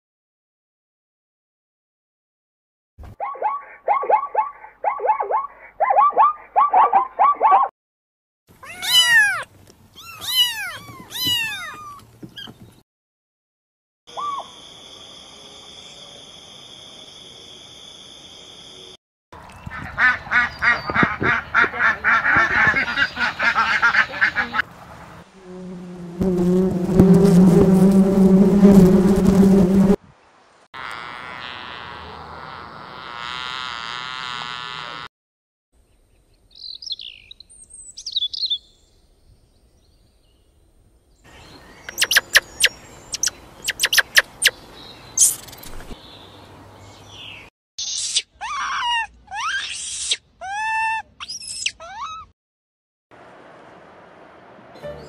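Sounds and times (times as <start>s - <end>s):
bird calls: 19.5s - 24.6s, 41.3s - 48.6s
honeybee swarm buzzing: 25.4s - 30.0s, 30.8s - 35.1s
rapid clicks and chirps: 41.9s - 44.6s, 45.2s - 45.9s.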